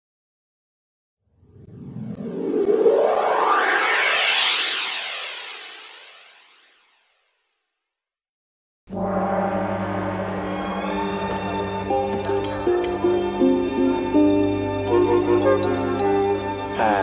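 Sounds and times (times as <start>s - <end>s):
rising swept sound effect: 1.4s - 6.9s
music: 8.9s - 17.0s.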